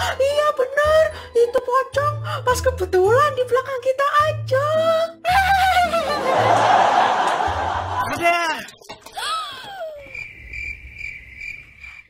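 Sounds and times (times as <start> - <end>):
crickets chirping: 9.9 - 12.0.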